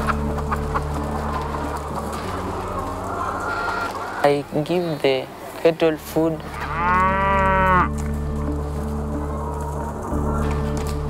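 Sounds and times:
steady low drone: 0.0 - 4.6, 6.3 - 11.0
cow mooing: 6.5 - 8.0.

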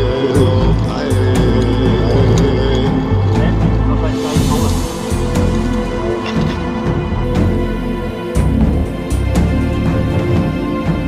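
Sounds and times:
low bass notes: 0.0 - 11.0.

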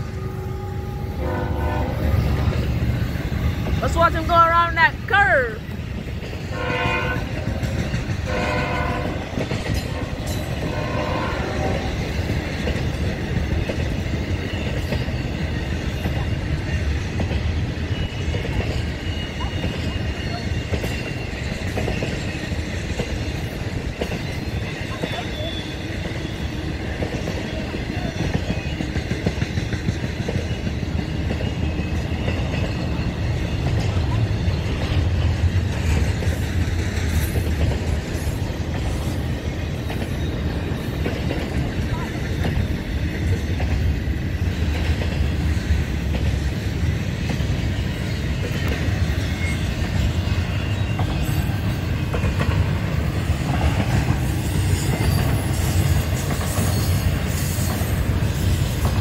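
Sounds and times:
train horn blasts: 0.0 - 2.5, 6.5 - 7.5, 8.2 - 9.4, 10.0 - 12.1
freight cars rumbling and rattling: 1.2 - 59.0.

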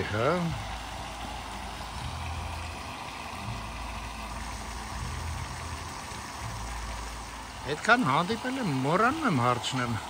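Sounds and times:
fountain splashing: 0.0 - 10.0.

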